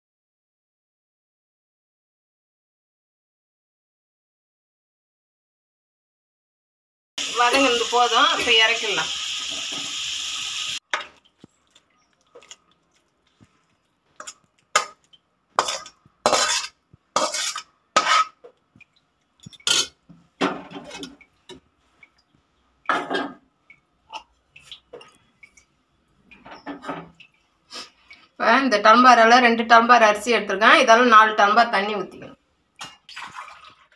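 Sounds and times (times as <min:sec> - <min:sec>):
ladle scraping metal pots: 0:14.2 - 0:18.5, 0:19.4 - 0:21.6.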